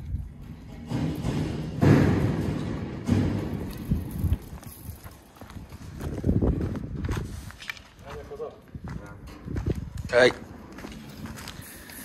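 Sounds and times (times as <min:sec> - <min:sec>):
knocks and scrapes: 0:00.3 - 0:05.3.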